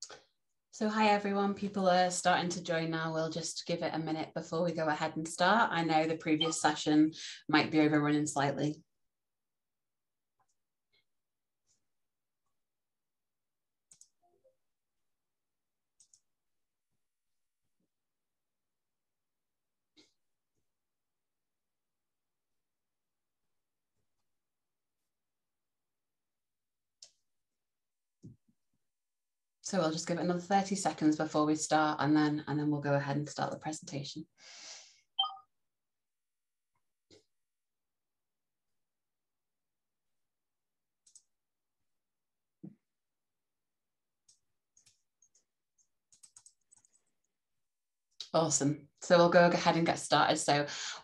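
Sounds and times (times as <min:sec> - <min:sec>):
short electronic beep: 0:35.2 - 0:35.5.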